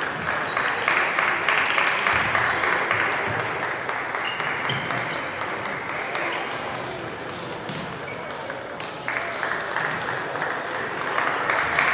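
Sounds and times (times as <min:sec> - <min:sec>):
applause echoing in hall: 0:00.0 - 0:07.5, 0:09.0 - 0:11.9.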